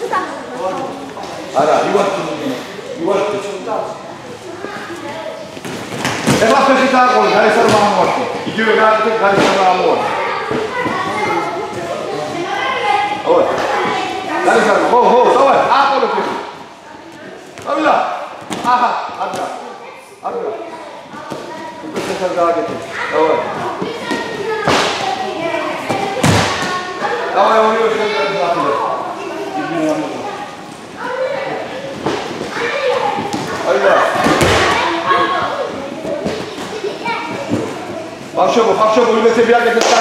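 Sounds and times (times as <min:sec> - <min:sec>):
voices talking: 0:00.0 - 0:40.0.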